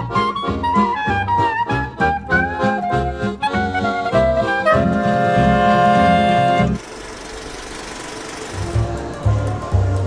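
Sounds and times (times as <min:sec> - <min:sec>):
film projector rattle: 0:06.8 - 0:10.0.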